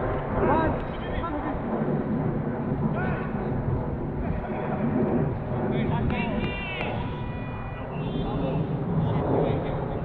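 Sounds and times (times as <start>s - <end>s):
low rumble: 0.0s - 10.0s
distant footballers shouting: 6.3s - 9.2s.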